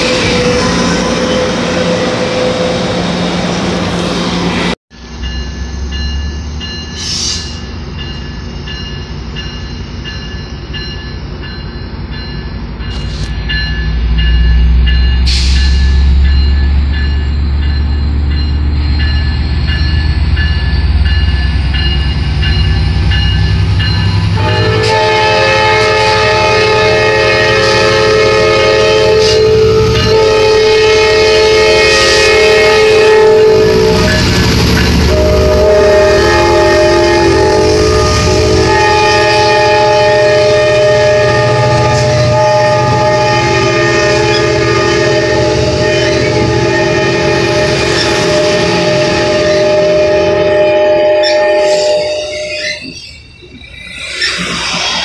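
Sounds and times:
multi-tone train horn: 0.0s - 3.2s, 24.2s - 52.7s
diesel train rumble: 0.0s - 55.0s.

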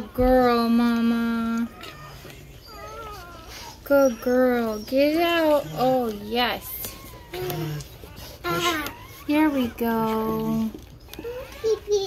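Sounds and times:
dog whining faintly: 1.3s - 12.0s.

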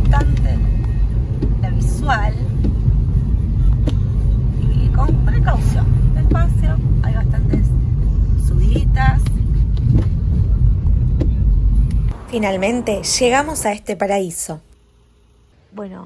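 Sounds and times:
car engine and tyres rumbling: 0.0s - 15.6s.

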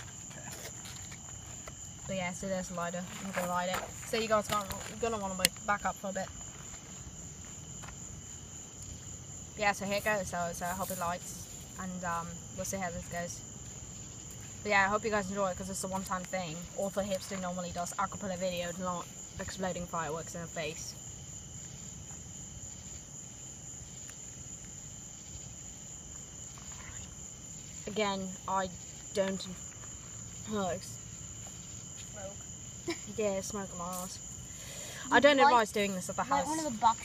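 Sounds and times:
crickets chirping: 0.0s - 37.0s.

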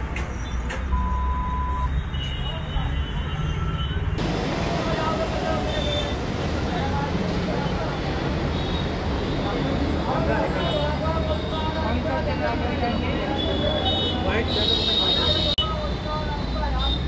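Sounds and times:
vehicle engines rumbling: 0.0s - 17.0s
short steady beep: 0.9s - 1.9s
people talking: 4.2s - 17.0s.

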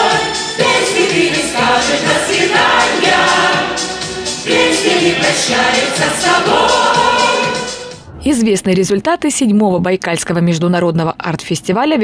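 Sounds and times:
group singing pop song: 0.0s - 8.0s.

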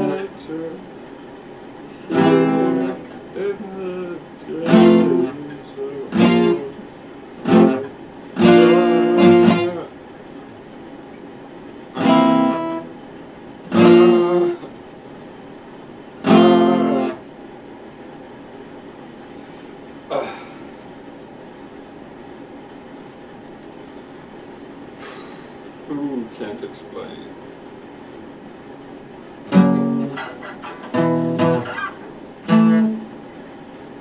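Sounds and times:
acoustic guitar chords strummed: 0.0s - 0.4s, 1.9s - 9.9s, 11.9s - 13.0s, 13.6s - 14.8s, 16.2s - 17.3s, 29.4s - 33.2s.

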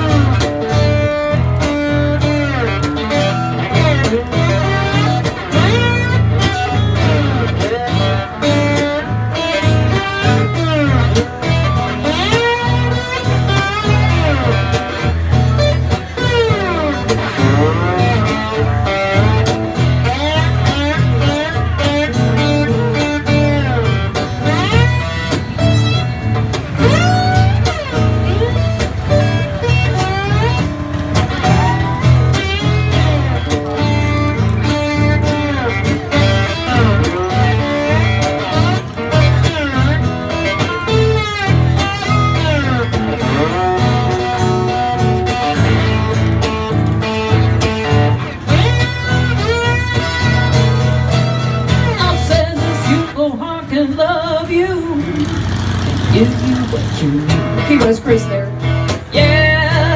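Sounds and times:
lead acoustic guitar with bent notes: 0.0s - 59.9s
rhythmic guitar accompaniment: 0.0s - 59.9s.

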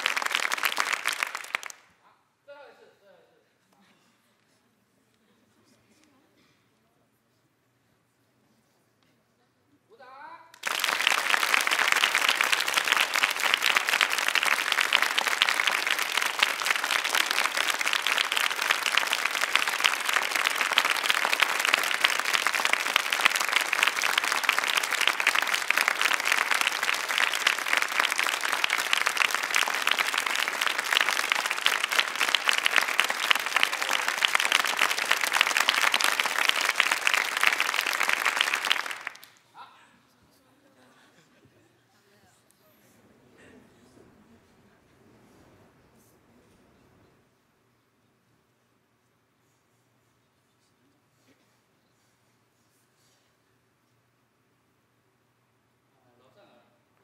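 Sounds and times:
studio audience applauding: 0.0s - 1.9s, 10.6s - 39.4s.

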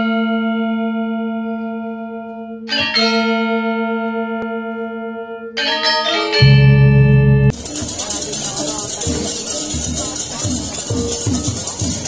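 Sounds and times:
bell chime ringing: 2.7s - 7.9s.

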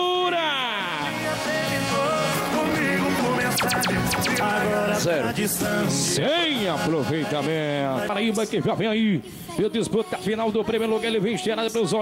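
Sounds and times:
man shouting over loudspeaker: 0.0s - 1.1s
music playing: 0.9s - 8.5s.

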